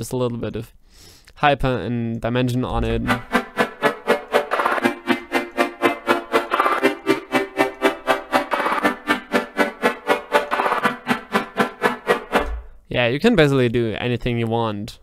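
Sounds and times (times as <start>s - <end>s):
synthesizer chords pulsing: 2.8s - 12.8s.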